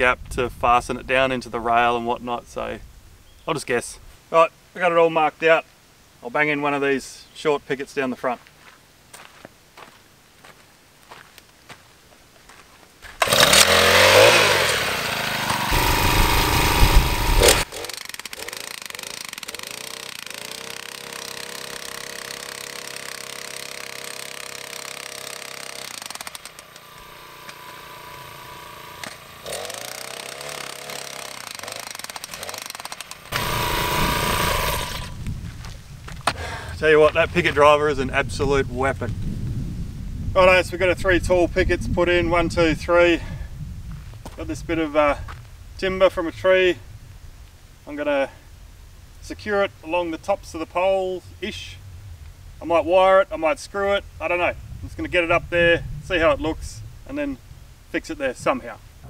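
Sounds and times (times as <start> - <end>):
small engine revving: 13.2 - 35.2.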